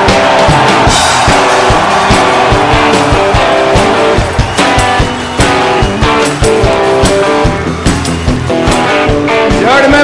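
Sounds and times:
bass guitar: 0.0 - 10.0
electric guitars: 0.0 - 10.0
steady drum beat: 0.0 - 10.0.

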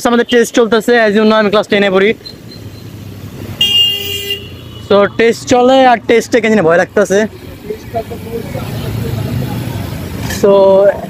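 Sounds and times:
street traffic noise: 0.0 - 11.0
low motor vehicle rumble: 1.6 - 3.6.

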